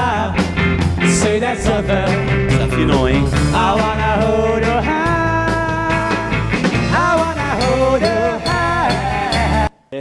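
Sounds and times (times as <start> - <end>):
man singing: 0.0 - 9.7
rock band playing live: 0.0 - 9.7.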